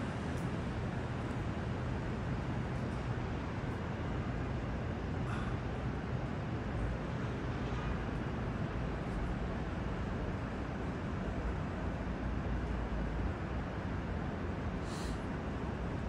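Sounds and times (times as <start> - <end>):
low city rumble: 0.0 - 16.0.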